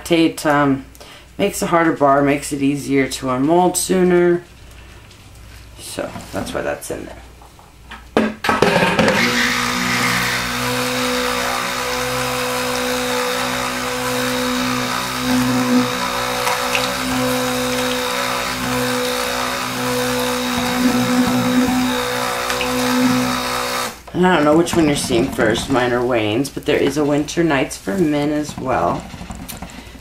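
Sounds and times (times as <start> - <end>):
stick blender running: 8.6 - 25.8, 28.4 - 30.0.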